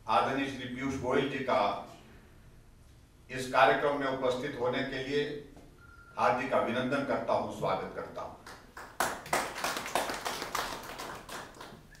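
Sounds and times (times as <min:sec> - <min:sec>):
people clapping: 0:08.4 - 0:12.0.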